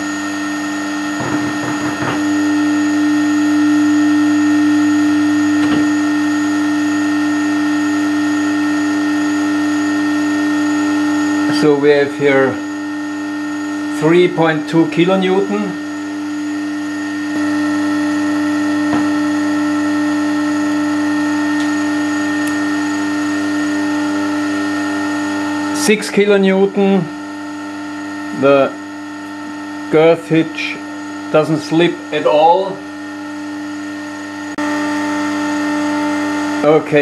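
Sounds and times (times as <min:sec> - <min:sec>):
motor humming: 0:00.0 - 0:37.0.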